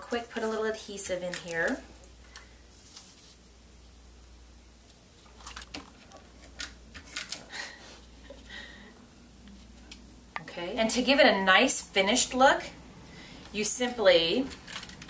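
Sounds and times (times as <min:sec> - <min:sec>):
faint room hum: 0:00.0 - 0:15.0
paper rustling: 0:02.7 - 0:03.4, 0:05.2 - 0:07.8.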